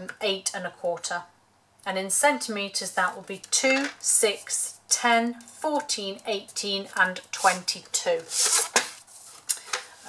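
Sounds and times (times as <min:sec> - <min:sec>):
cardstock rustling and sliding: 0:08.2 - 0:10.0.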